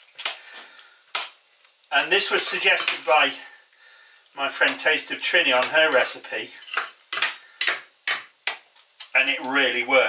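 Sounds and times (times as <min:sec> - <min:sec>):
metal spoon clinking on pot: 0:06.6 - 0:07.2.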